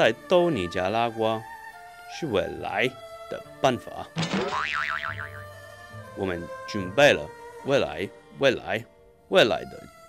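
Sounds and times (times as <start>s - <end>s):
background music with low note: 0.0s - 1.5s, 2.1s - 10.0s.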